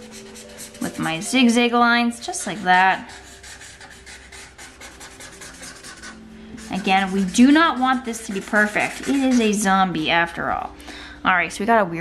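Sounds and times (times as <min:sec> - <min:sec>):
marker scratching on paper: 0:00.0 - 0:01.6, 0:02.3 - 0:09.7.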